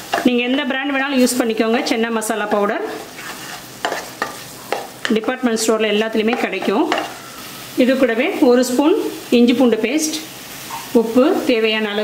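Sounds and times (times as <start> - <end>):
paste sizzling in oil: 0.0 - 12.0
wooden spatula scraping a pan: 2.8 - 5.4.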